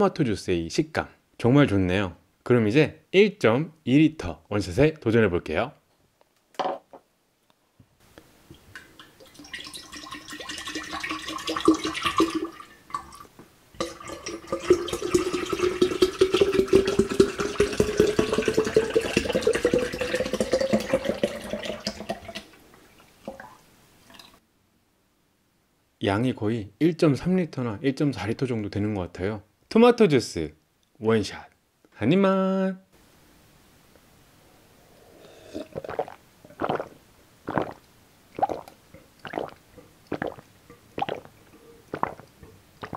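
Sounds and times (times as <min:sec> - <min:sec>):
juice pouring into a glass pitcher: 0:08.8 - 0:24.4, 0:35.5 - 0:37.8, 0:38.4 - 0:42.9
gulping swallows: 0:35.1 - 0:42.9.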